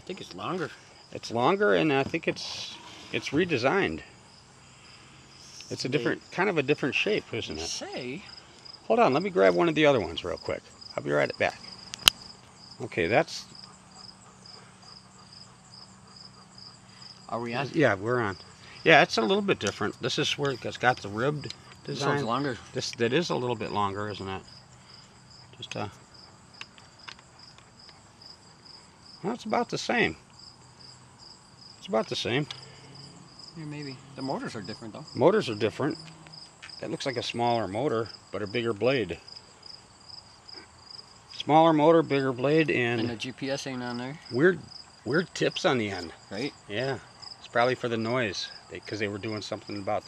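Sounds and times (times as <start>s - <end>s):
insect chirping: 0.0s - 50.0s.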